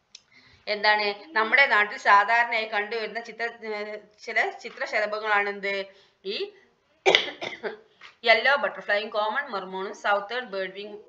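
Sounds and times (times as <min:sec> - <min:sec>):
person coughing: 0:07.1 - 0:07.8.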